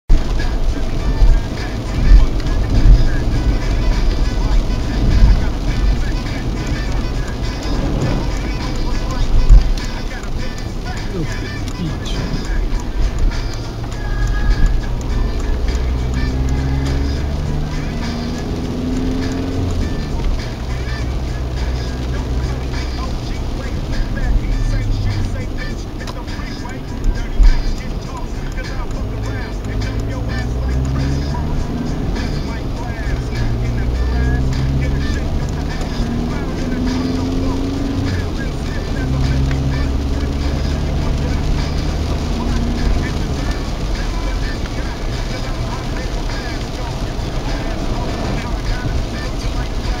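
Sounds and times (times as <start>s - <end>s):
road and engine noise: 0.0s - 50.0s
car radio voice and music: 0.1s - 50.0s.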